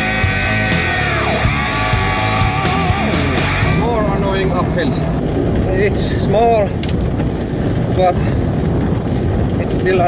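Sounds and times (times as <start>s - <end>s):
road and wind noise rumble: 0.0s - 10.0s.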